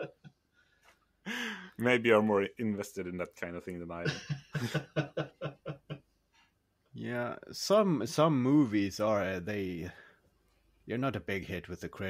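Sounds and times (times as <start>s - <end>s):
man laughing: 0.0s - 0.3s, 4.0s - 6.1s.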